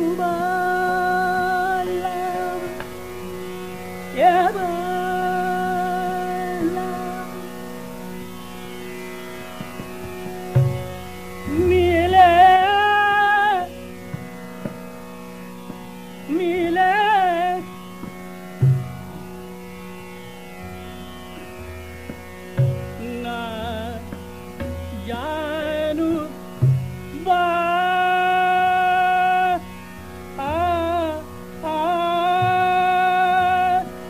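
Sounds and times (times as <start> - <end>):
person singing ornamented phrases: 0.0 - 2.8, 4.2 - 7.4, 11.5 - 13.8, 27.1 - 29.7, 30.4 - 34.0
low tabla strokes: 0.0 - 34.0.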